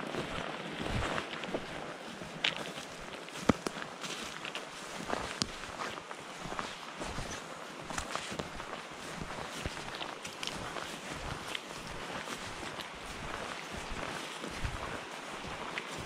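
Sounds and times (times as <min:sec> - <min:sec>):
footsteps: 0:00.0 - 0:16.0.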